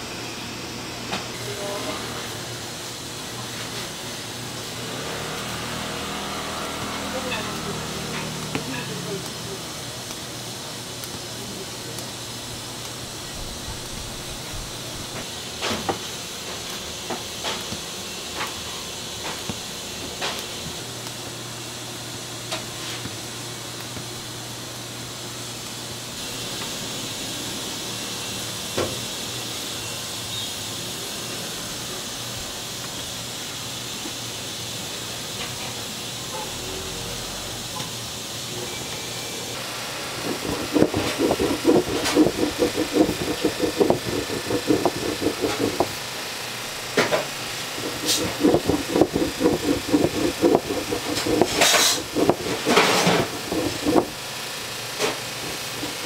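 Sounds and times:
rolling pin clacking on board: 0:40.2 - 0:46.0, 0:47.8 - 0:54.2.

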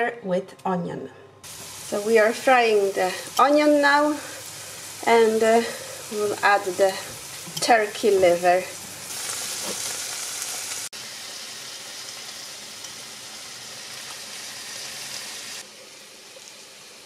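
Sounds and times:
food sizzling in a pan: 0:01.4 - 0:17.0.

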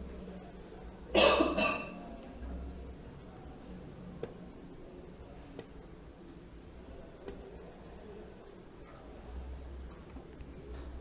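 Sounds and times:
person coughing: 0:01.2 - 0:01.9.

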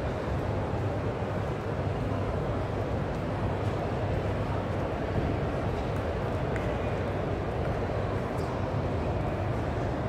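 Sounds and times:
indistinct hall noise: 0:00.0 - 0:10.0.

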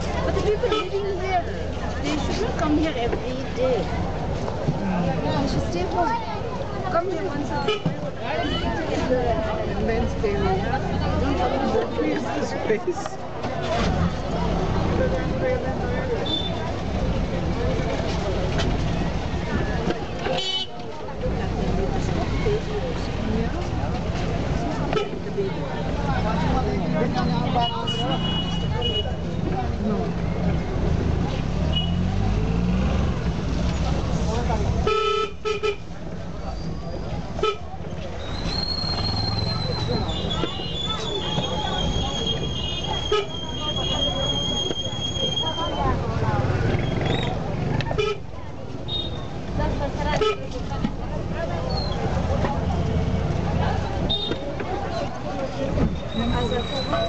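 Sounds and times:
babble of voices: 0:00.0 - 0:35.0, 0:35.8 - 0:57.0.

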